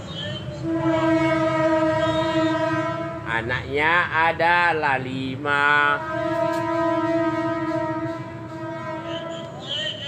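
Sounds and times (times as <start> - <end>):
person singing a long note: 6.0 - 10.0.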